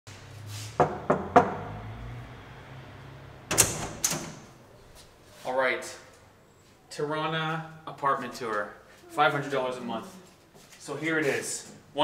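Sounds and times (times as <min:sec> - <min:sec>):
door lock and latch clatter: 0:03.5 - 0:04.5.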